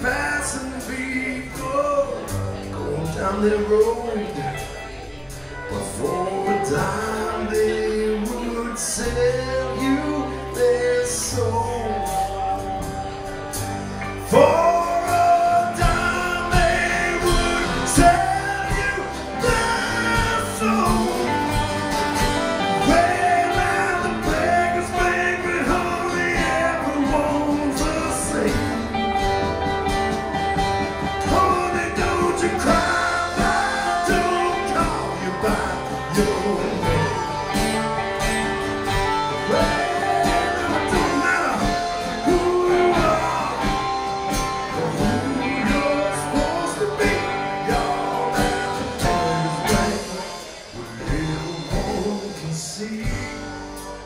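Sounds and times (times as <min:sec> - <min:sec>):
live band playing: 0:00.0 - 0:54.0
sliding guitar melody: 0:00.0 - 0:54.0.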